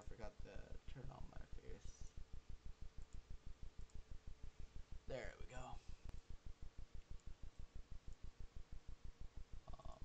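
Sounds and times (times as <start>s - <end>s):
rapid low clicks: 2.8s - 4.4s
faint sharp clicks: 3.0s - 3.2s.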